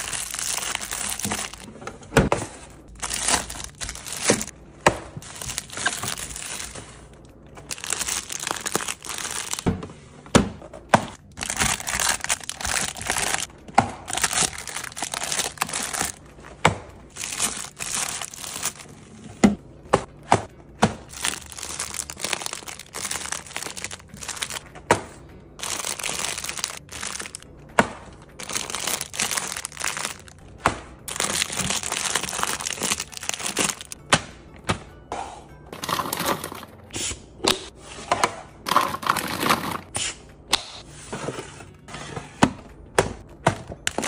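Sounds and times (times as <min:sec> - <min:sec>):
plastic wrappers crinkling: 0:00.0 - 0:01.7, 0:02.9 - 0:04.5, 0:05.2 - 0:09.7, 0:11.2 - 0:13.5, 0:14.1 - 0:16.2, 0:17.1 - 0:18.9, 0:21.1 - 0:24.7, 0:25.6 - 0:27.4, 0:28.3 - 0:30.4, 0:31.1 - 0:34.0, 0:35.8 - 0:36.6
plastic packages tapping together: 0:00.0 - 0:02.3, 0:03.0 - 0:04.5, 0:05.2 - 0:06.7, 0:07.7 - 0:09.7, 0:10.9 - 0:13.5, 0:14.1 - 0:16.2, 0:17.1 - 0:18.8, 0:21.0 - 0:24.6, 0:25.6 - 0:27.4, 0:28.3 - 0:30.4, 0:31.1 - 0:34.0.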